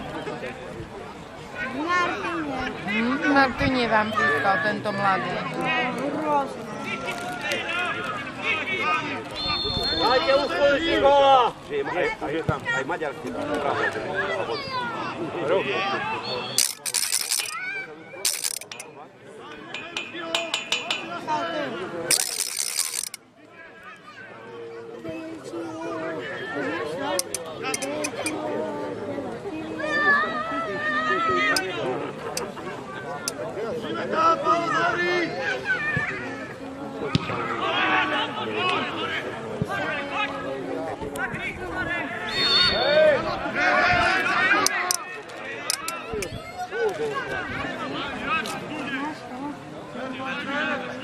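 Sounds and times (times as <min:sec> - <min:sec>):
referee's whistle blast: 0:09.4 - 0:10.2, 0:42.3 - 0:42.9
sharp clicks: 0:16.6 - 0:17.6, 0:18.3 - 0:18.9, 0:22.1 - 0:23.2, 0:27.2 - 0:28.4, 0:45.7 - 0:46.0.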